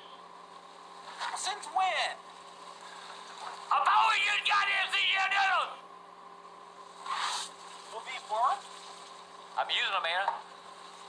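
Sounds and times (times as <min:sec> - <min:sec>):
man speaking: 0:03.7 - 0:05.8, 0:07.9 - 0:08.6
short rush of noise: 0:07.0 - 0:08.0.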